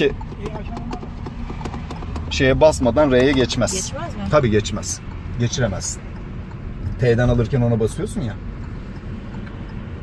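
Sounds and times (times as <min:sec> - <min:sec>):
car cabin rumble: 0:00.0 - 0:10.0
gear selector clicks and knocks: 0:00.0 - 0:10.0.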